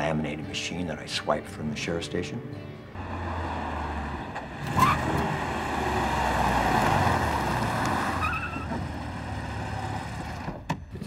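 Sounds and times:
car engine passing: 3.0s - 10.6s
tyre noise: 3.4s - 11.0s
tyre squeal: 4.6s - 5.3s, 7.9s - 9.0s.

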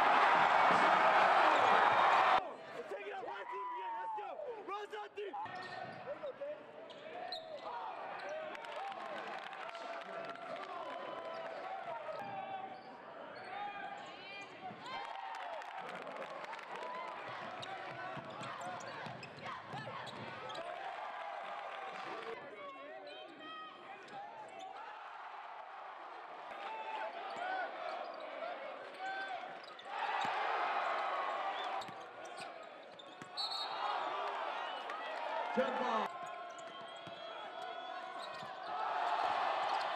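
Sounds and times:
crowd noise and voices: 0.0s - 39.9s.

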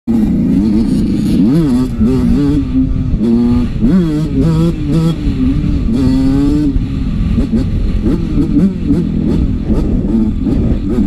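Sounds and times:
dirt bike engine revving: 0.1s - 11.0s.

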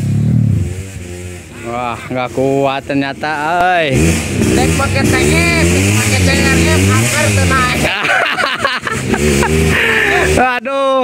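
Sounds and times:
dirt bike engine revving: 0.0s - 10.6s.

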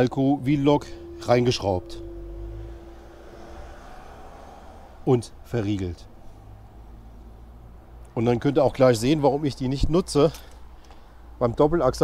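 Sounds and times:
low hum: 0.0s - 7.5s.

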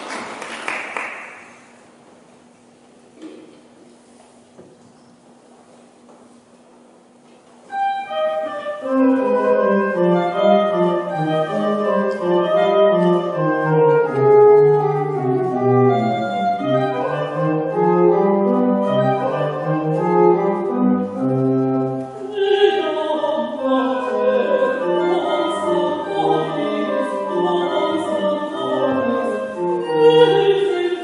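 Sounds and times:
children's choir singing: 22.3s - 31.0s.

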